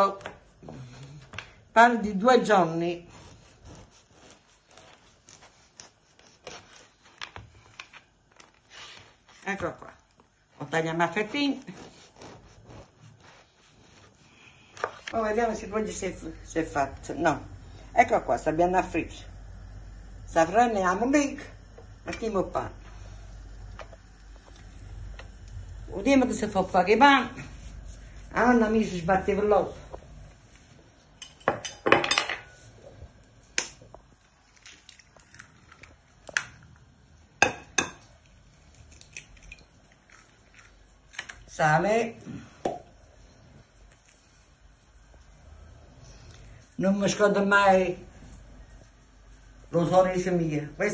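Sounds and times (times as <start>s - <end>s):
knife sawing through bread: 2.9s - 6.9s, 11.6s - 14.2s
eggs cracking on glass bowl: 38.8s - 41.5s.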